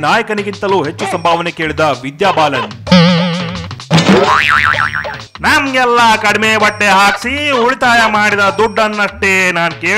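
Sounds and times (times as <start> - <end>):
cartoon boing: 2.9 - 5.2
warbling comic sound effect: 2.9 - 5.2.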